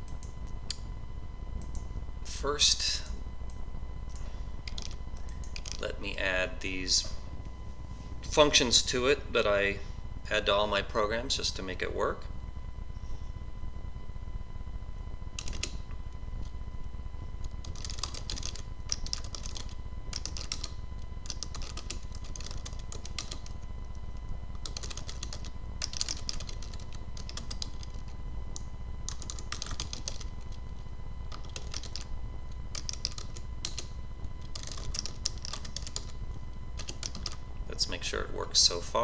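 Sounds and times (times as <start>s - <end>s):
faint low hum: 0.0s - 39.0s
computer keyboard typing: 4.1s - 5.8s, 15.4s - 15.8s, 17.5s - 32.1s, 32.7s - 36.2s, 36.8s - 37.4s.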